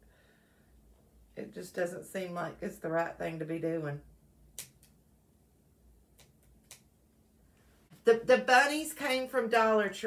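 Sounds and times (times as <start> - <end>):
scissors snipping: 4.6 - 5.0.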